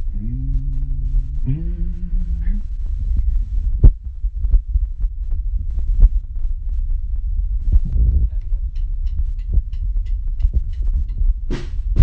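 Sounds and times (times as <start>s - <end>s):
held low note: 0.0s - 11.2s
irregular low thumps: 0.0s - 12.0s
steady low hum: 0.0s - 12.0s.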